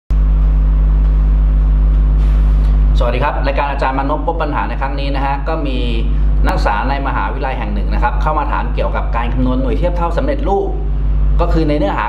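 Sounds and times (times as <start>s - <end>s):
loud low hum with tones: 0.1s - 12.0s.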